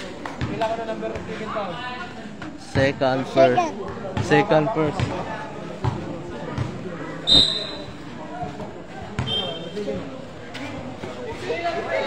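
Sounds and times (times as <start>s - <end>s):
voices of players and spectators: 0.0s - 12.0s
basketball bouncing on concrete: 0.4s - 1.3s, 3.8s - 6.9s
high-pitched shoe squeaks: 7.3s - 8.0s.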